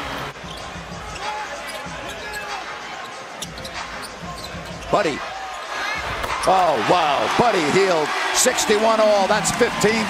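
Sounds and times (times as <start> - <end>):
crowd voices: 0.0 - 10.0.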